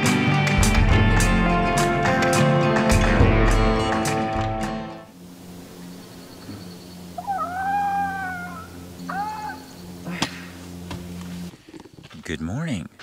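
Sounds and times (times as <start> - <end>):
steady low hum: 5.0 - 12.0
drawn-out wailing calls: 6.1 - 10.1.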